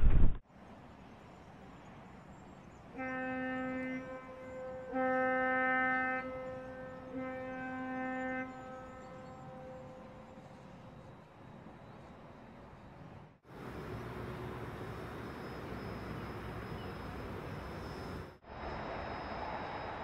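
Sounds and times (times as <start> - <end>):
signal horn blasts: 3.0 - 10.5.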